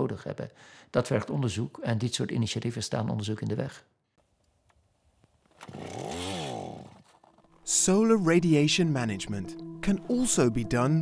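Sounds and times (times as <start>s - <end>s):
ice auger motor drilling: 5.6s - 7.6s.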